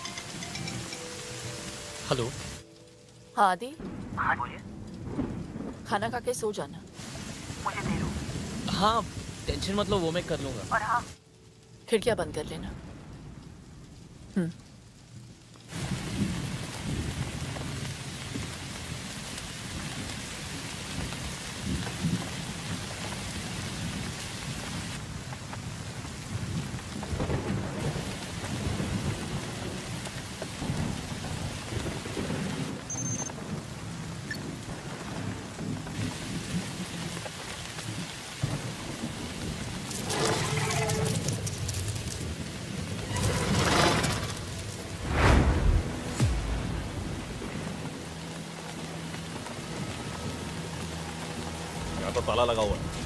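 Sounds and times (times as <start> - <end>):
pouring rain: 0.0 - 53.0
deep rumble of thunder: 3.8 - 10.4, 15.0 - 51.0.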